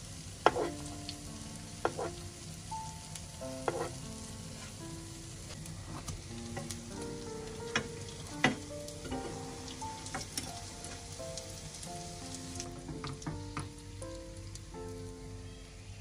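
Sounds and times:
buns sizzling in hot oil: 0:00.0 - 0:16.0
metal spoon clinking on pan: 0:00.4 - 0:00.8, 0:03.7 - 0:04.0.

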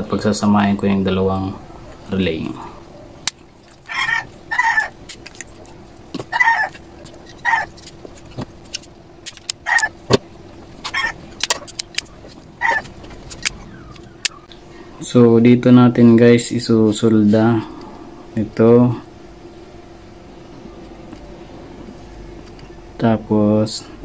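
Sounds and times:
bird calling: 0:01.5 - 0:15.0.

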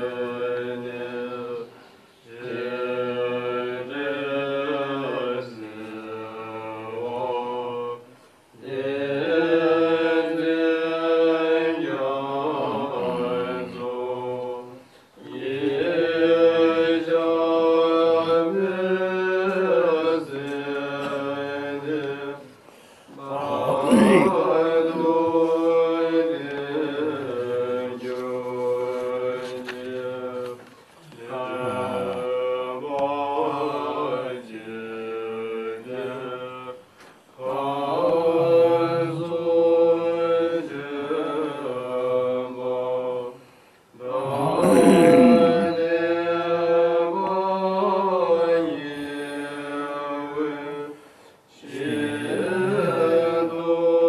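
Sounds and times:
monks chanting in unison: 0:00.0 - 0:36.8, 0:37.4 - 0:54.0.

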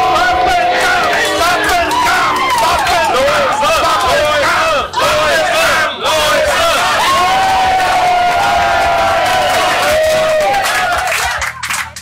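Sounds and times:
crowd chanting and shouting: 0:00.0 - 0:11.6.

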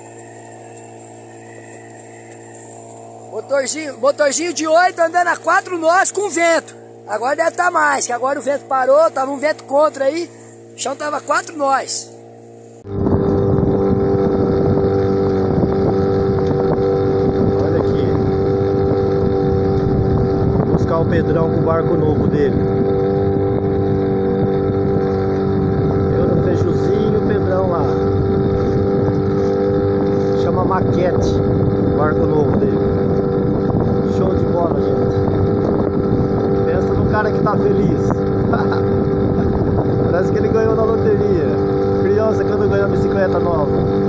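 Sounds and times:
outboard motor droning: 0:00.0 - 0:44.0.

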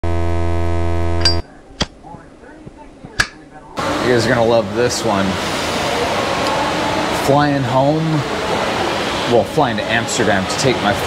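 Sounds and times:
low electrical buzz: 0:00.0 - 0:05.4
sharp click: 0:01.2 - 0:02.0, 0:03.1 - 0:03.4.

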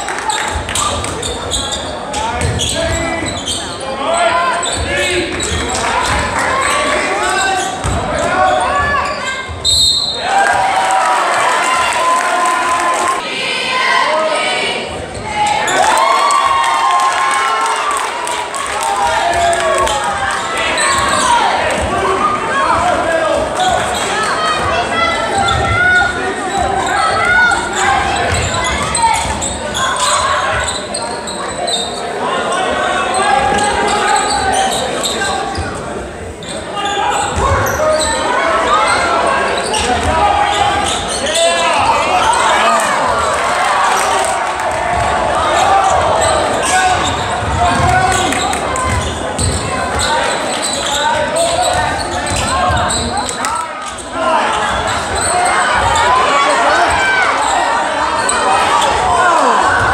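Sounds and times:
crowd and players shouting: 0:00.0 - 0:59.9.

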